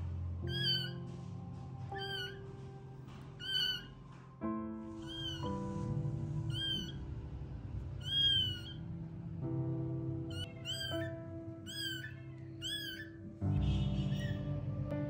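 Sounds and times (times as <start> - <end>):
soft background music: 0.0 - 15.0
kitten mewing: 0.4 - 1.0, 2.0 - 2.4, 3.4 - 3.9, 5.0 - 5.5, 6.5 - 7.0, 8.0 - 8.8, 10.3 - 11.1, 11.7 - 13.2, 14.0 - 14.4.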